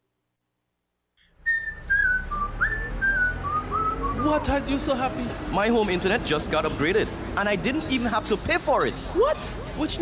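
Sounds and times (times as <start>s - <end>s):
whistled tune: 1.4s - 4.4s.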